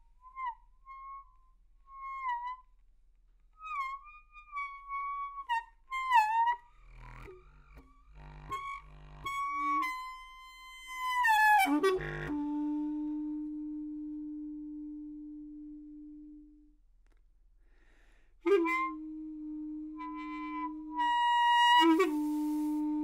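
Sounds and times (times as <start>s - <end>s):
reedy saxophone mouthpiece notes: 3.6s - 23.0s.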